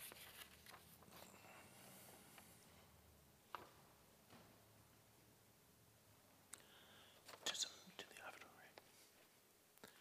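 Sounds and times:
person whispering: 0:07.3 - 0:09.2.

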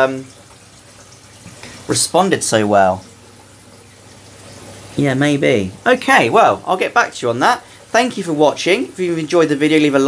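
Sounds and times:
aquarium water circulating: 0:00.0 - 0:10.0.

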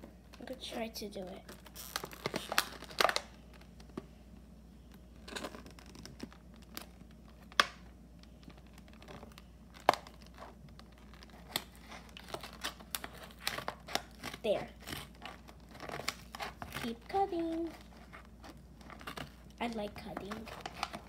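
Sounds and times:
plastic packaging crackling: 0:01.4 - 0:04.0, 0:04.9 - 0:21.0
scissors cutting plastic: 0:09.8 - 0:17.6.

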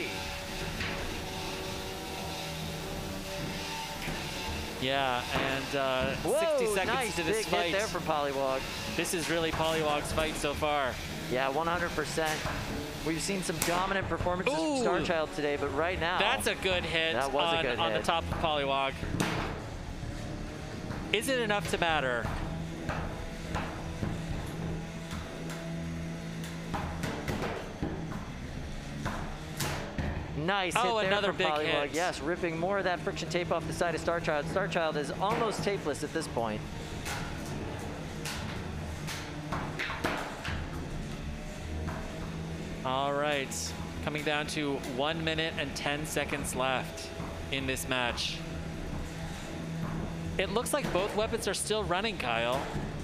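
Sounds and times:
electric motor hum: 0:00.0 - 0:13.9.

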